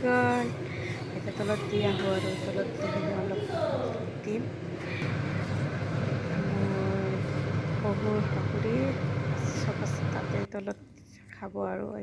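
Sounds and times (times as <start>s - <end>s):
low machine hum: 0.0s - 12.0s.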